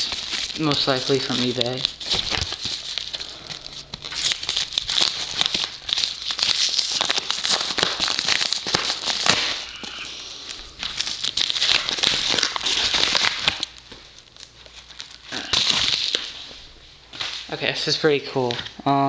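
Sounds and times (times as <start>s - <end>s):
paper envelope crinkling: 0.0s - 17.5s.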